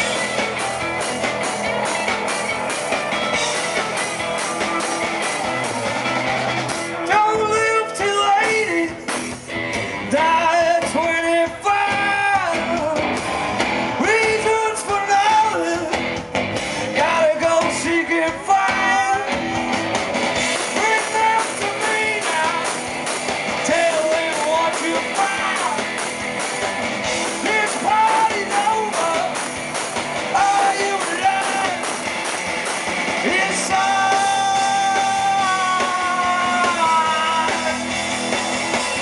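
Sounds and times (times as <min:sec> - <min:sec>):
rising and falling melody line: 0:00.0 - 0:07.9
rock band playing live: 0:00.0 - 0:39.0.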